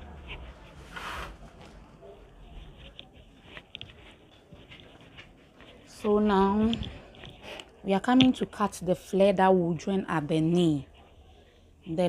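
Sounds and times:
fabric rustling: 0.0 - 8.8.

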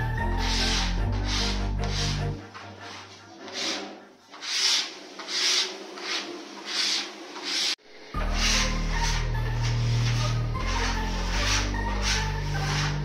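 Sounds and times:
background music with low tones: 0.0 - 4.1, 7.8 - 13.0
scratchy rubbing on plywood: 0.0 - 13.0.

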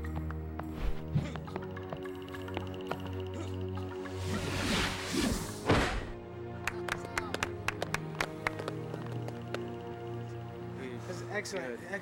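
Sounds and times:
background music: 0.0 - 12.0
people clapping sparsely: 6.6 - 9.8.

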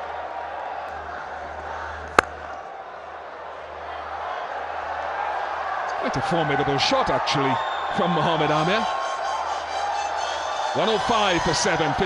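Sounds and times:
cricket bat striking ball: 2.1 - 2.4.

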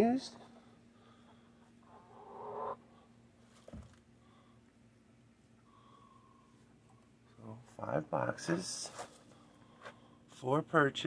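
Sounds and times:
chicken call: 2.0 - 2.8.

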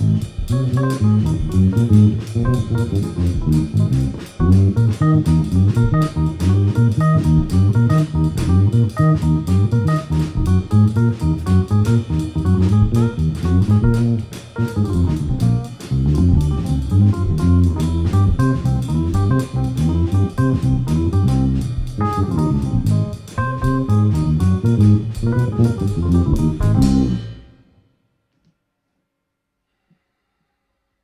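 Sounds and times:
drum kit cymbal strokes: 0.0 - 27.6
electric bass walking line: 0.0 - 27.6
keyboard playing: 0.0 - 27.6.

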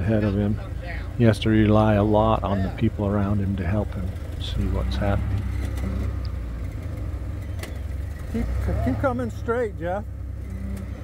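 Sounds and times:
engine running low and steady: 0.0 - 11.0.

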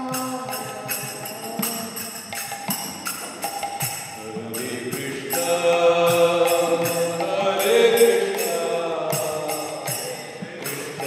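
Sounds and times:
devotional chanting: 0.0 - 11.0
small hand cymbals: 0.0 - 11.0.

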